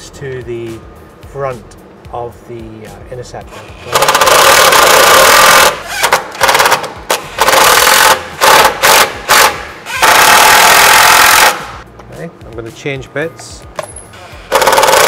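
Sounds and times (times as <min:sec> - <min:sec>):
impact driver hammering: 0:03.9 - 0:11.7, 0:14.5 - 0:15.0.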